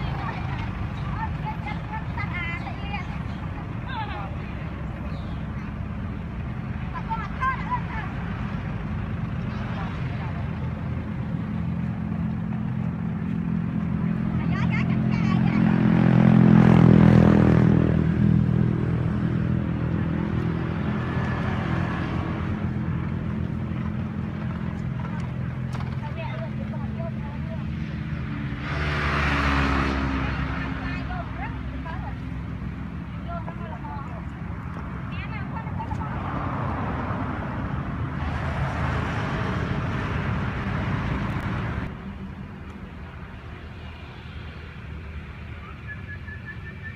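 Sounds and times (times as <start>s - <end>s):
vehicle engine humming: 0.0s - 46.9s.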